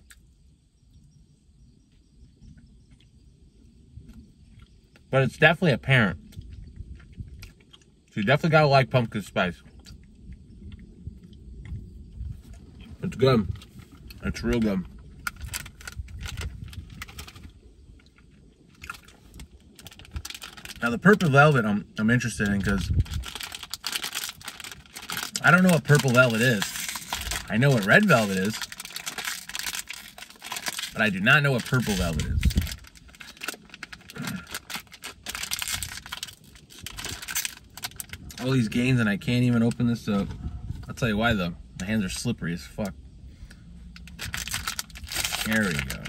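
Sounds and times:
plastic wrappers crackling: 0:15.2 - 0:17.5, 0:18.7 - 0:21.3, 0:22.4 - 0:38.6, 0:43.9 - 0:46.0.

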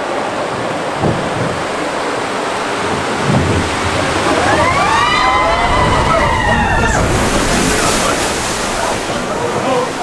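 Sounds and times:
gush of water: 0:00.0 - 0:10.0
rushing water: 0:00.0 - 0:10.0
people wailing whoo: 0:04.2 - 0:07.8.

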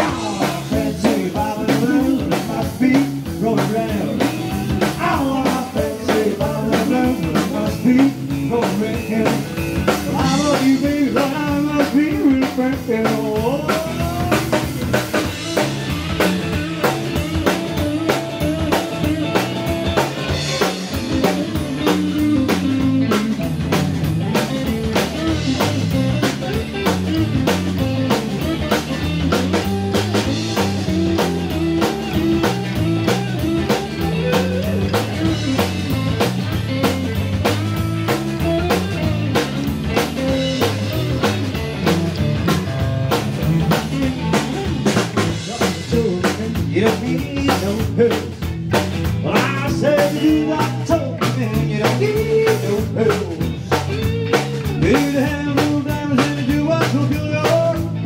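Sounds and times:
drum kit fast beat: 0:00.0 - 0:58.0
electric bass: 0:00.0 - 0:58.0
electric guitar lead: 0:00.0 - 0:58.0.

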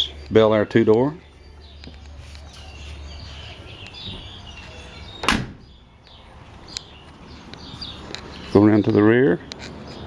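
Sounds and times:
birds chirping faintly: 0:00.0 - 0:10.0
car door slamming: 0:05.2 - 0:05.8.

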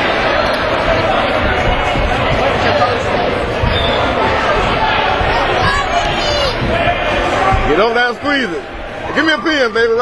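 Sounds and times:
crowd talking and calling out: 0:00.0 - 0:10.0
dull thumps: 0:00.9 - 0:08.0.

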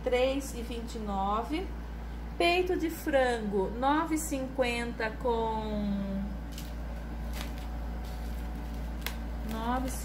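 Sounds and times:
steady low hum: 0:00.0 - 0:10.0
plastic wrap crackling: 0:06.4 - 0:10.0.

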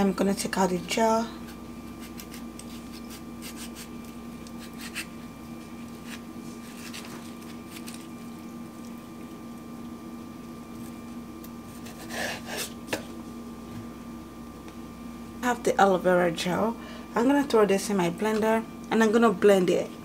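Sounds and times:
steady hum: 0:00.0 - 0:20.0
knife cutting aloe leaf: 0:02.0 - 0:05.1, 0:06.0 - 0:08.0.

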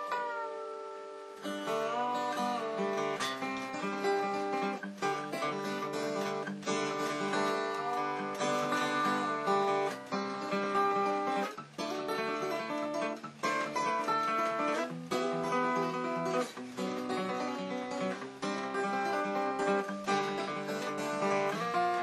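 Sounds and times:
fingerstyle acoustic guitar: 0:00.0 - 0:22.0.

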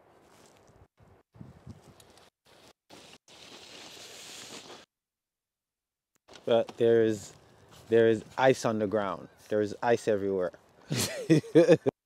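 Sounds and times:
faint outdoor noise: 0:06.3 - 0:12.0.

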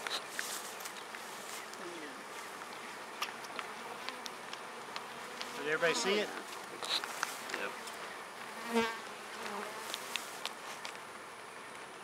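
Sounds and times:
honeybees buzzing: 0:00.0 - 0:11.6.

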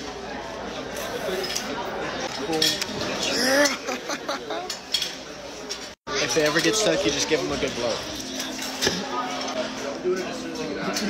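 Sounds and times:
dining-room background: 0:00.6 - 0:11.0.

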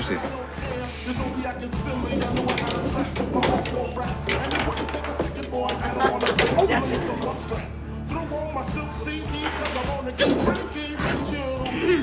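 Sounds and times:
background music: 0:00.0 - 0:12.0
table football clacking: 0:02.0 - 0:07.5.

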